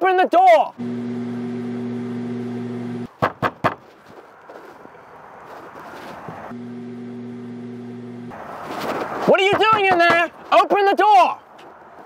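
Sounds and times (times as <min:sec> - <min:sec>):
microwave oven humming: 0:00.8 - 0:03.1, 0:06.6 - 0:08.3.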